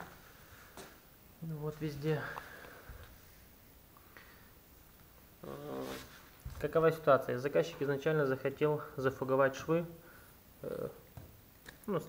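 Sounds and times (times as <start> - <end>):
man humming: 5.4 - 6.1.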